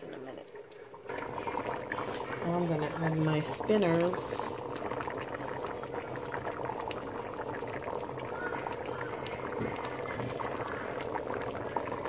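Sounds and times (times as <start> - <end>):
pot boiling with bubbling pops: 0.0 - 12.0.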